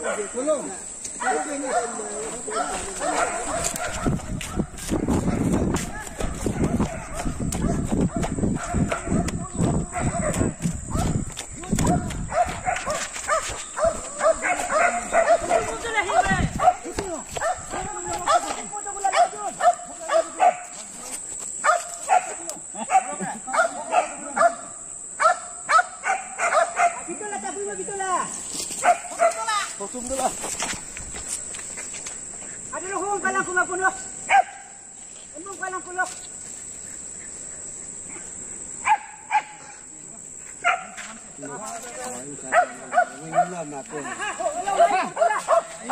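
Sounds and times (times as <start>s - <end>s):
dog barking: 0.0s - 0.4s, 1.2s - 11.2s, 11.8s - 20.7s, 21.6s - 27.1s, 28.8s - 29.6s, 34.3s - 34.8s, 38.8s - 39.8s, 40.6s - 41.0s, 42.5s - 43.6s, 45.1s - 45.9s
footsteps on dirt path: 0.9s - 22.3s, 28.3s - 37.0s, 40.4s - 45.9s.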